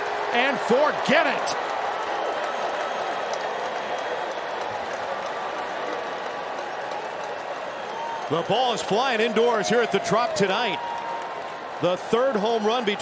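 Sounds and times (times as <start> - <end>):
crowd cheering: 0.0 - 13.0
scattered claps: 0.6 - 12.0.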